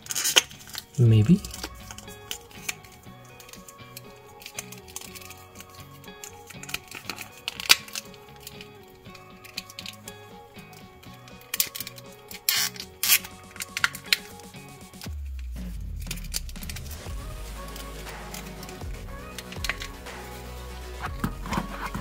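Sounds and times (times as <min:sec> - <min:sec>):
plastic toy parts clicking: 0:00.0 - 0:08.7, 0:09.4 - 0:10.1, 0:11.4 - 0:14.5, 0:18.2 - 0:20.0
background music: 0:00.0 - 0:22.0.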